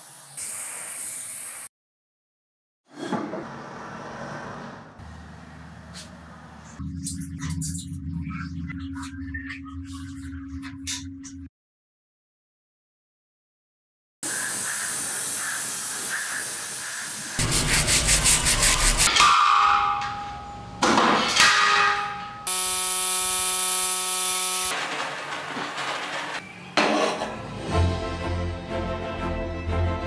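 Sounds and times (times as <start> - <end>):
rhythmic rubbing on metal: 17.4 - 19.1
ringing metallic knocks: 19.1 - 22.5
humming whine: 22.5 - 24.7.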